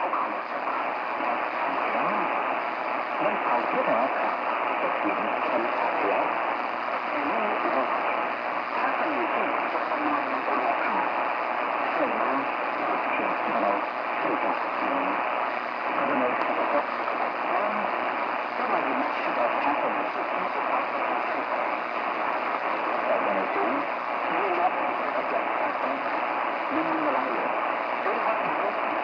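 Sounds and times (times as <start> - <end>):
muffled radio speech: 0.0 - 29.0
radio static hiss: 0.0 - 29.0.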